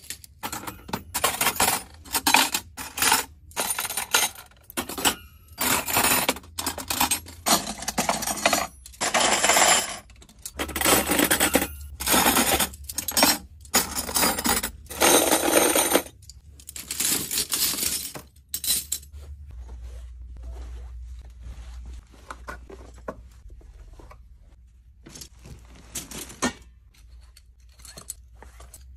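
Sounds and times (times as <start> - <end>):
metal cutlery clattering: 0.0 - 19.1.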